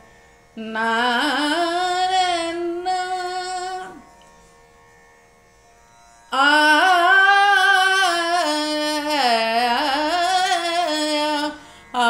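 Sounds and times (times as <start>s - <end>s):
faint steady drone: 0.0s - 12.0s.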